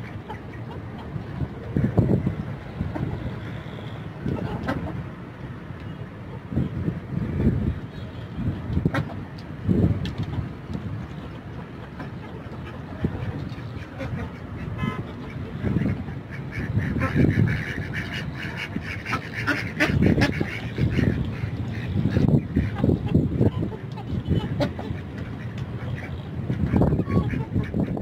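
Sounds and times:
ducks quacking: 0:00.0 - 0:05.1, 0:11.1 - 0:28.0.

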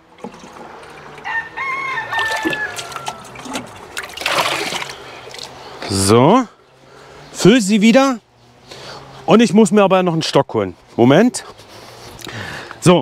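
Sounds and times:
watering can filling with water: 0:00.0 - 0:05.5
rooster crowing: 0:01.2 - 0:03.6.

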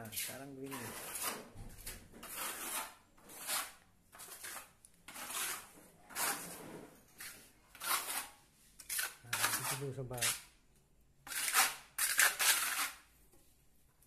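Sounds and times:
trowel scraping wet cement: 0:00.0 - 0:10.5, 0:11.2 - 0:13.1.

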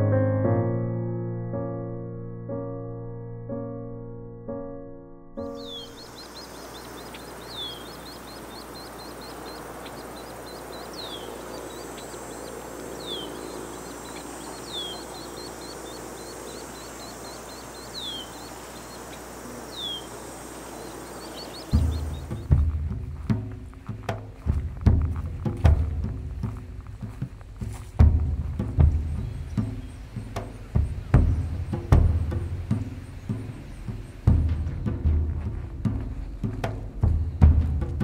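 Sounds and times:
birds chirping: 0:05.4 - 0:38.0
outdoor ambience: 0:05.4 - 0:38.0
music with heavy drum beats: 0:21.7 - 0:38.0.

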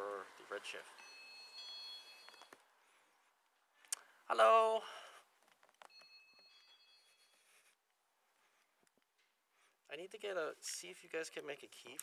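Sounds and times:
faint high-pitched tones: 0:00.0 - 0:03.2, 0:05.8 - 0:07.8.

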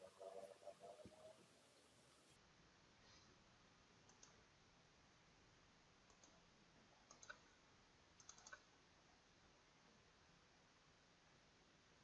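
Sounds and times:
computer mouse clicks: 0:04.0 - 0:04.4, 0:06.1 - 0:07.6, 0:08.2 - 0:08.7.

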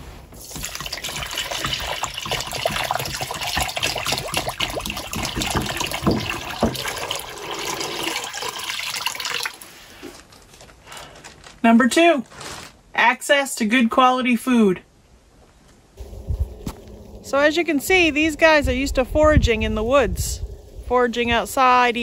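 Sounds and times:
water pouring into a bowl: 0:00.4 - 0:09.6.

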